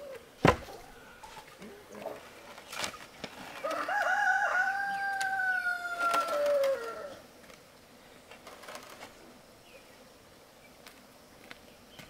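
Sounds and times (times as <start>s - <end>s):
rooster crowing: 3.6s - 7.2s.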